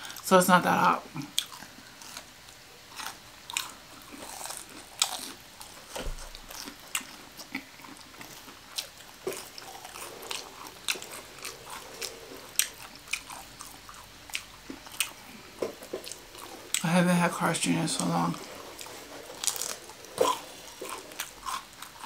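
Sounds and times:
crunchy food chewing: 0:01.2 - 0:16.9, 0:17.9 - 0:22.0.

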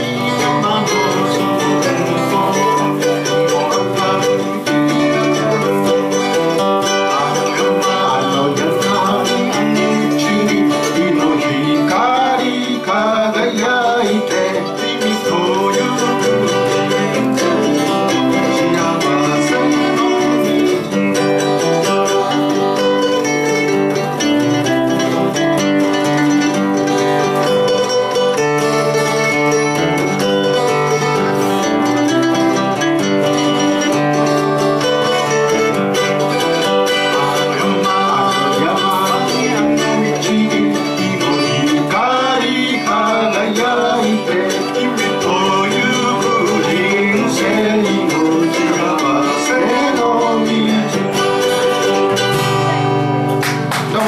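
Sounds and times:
man singing: 0:00.0 - 0:26.2, 0:34.8 - 0:52.3
acoustic guitar: 0:00.0 - 0:54.0
plucked string instrument: 0:00.0 - 0:54.0.

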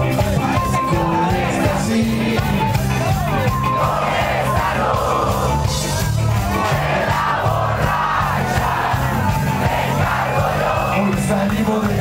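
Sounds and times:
crowd voices: 0:00.0 - 0:12.0
live rock band playing: 0:00.0 - 0:12.0
voices singing and shouting: 0:00.0 - 0:12.0.

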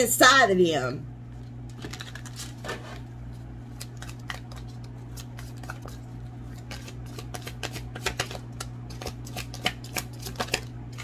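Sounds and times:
steady low hum: 0:00.0 - 0:11.0
cards being shuffled: 0:01.4 - 0:11.0.

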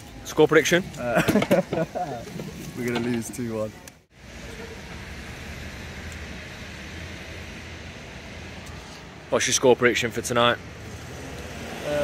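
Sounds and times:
traffic rumble and hiss: 0:00.0 - 0:12.0.

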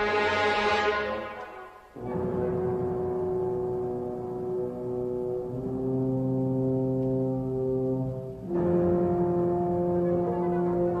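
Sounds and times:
low brass sustained chords: 0:00.0 - 0:11.0.

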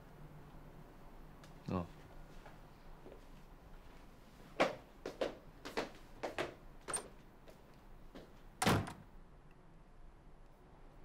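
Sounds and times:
door shutting thud: 0:08.6 - 0:09.1.

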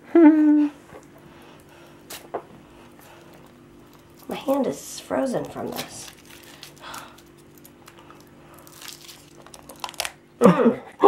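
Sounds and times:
foil crinkling: 0:03.1 - 0:10.2
chocolate shell cracking: 0:05.4 - 0:10.2.

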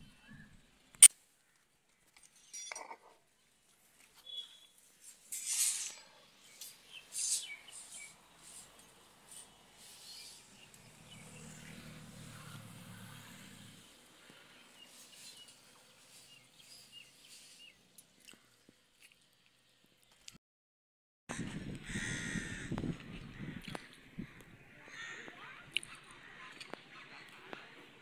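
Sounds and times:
small bird chirps: 0:04.2 - 0:04.8, 0:06.4 - 0:08.8.

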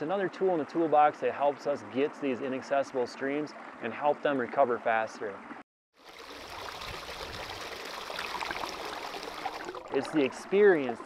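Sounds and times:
stream flowing over stones: 0:06.0 - 0:11.0.

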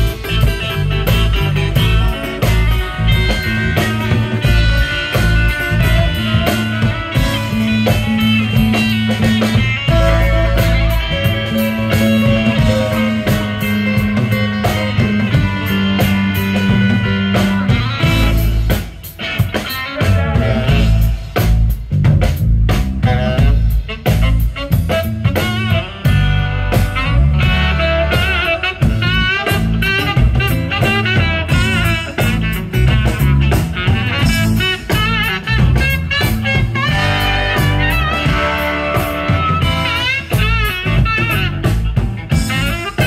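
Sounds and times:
bass guitar: 0:00.0 - 0:43.0
drum kit: 0:00.0 - 0:43.0
electric guitars: 0:00.0 - 0:43.0.

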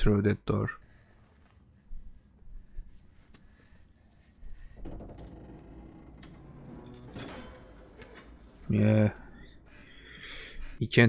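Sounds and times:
metal door clanking: 0:04.8 - 0:08.5
metal door creaking: 0:04.8 - 0:08.8.

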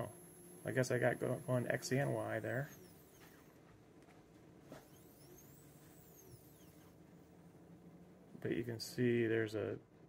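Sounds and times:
stepper motor whine: 0:00.0 - 0:08.6
low steady hum: 0:00.0 - 0:10.0.

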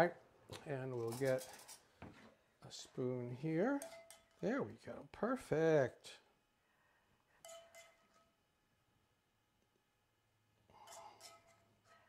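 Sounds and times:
metal spoon clinking on cookware: 0:01.0 - 0:01.8, 0:03.6 - 0:04.5, 0:07.4 - 0:08.4, 0:10.8 - 0:12.0.

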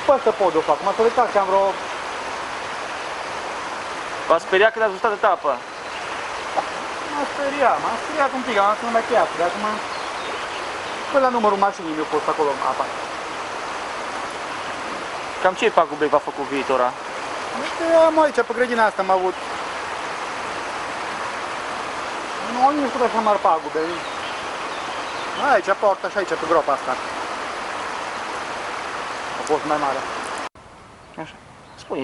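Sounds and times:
creek in flood rushing: 0:00.0 - 0:32.0.

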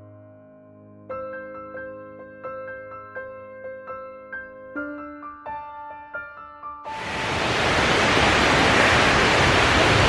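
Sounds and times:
water rushing: 0:06.9 - 0:10.0.

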